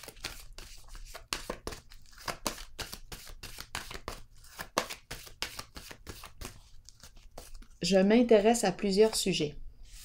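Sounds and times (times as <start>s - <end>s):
cards being shuffled: 0.0s - 7.9s.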